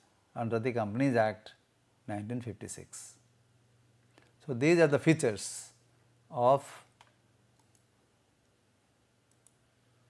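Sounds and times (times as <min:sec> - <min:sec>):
computer mouse clicks: 0:06.9 - 0:07.9, 0:09.3 - 0:09.6.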